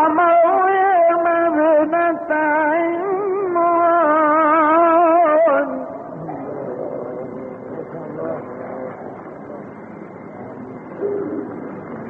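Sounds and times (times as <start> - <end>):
person reciting: 0.0 - 9.7
recording hiss: 0.1 - 12.0
crowd murmuring and calling out: 5.8 - 12.0.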